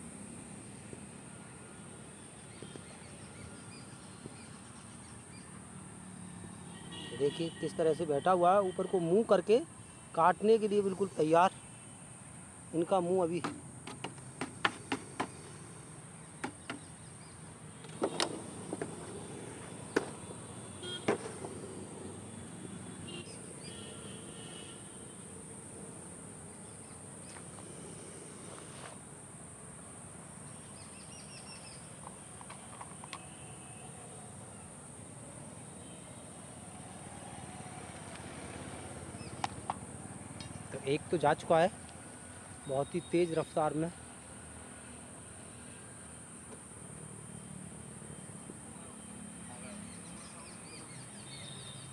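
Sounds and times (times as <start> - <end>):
crickets droning: 0.0 - 51.9
sharp clicks and knocks: 13.4 - 15.5.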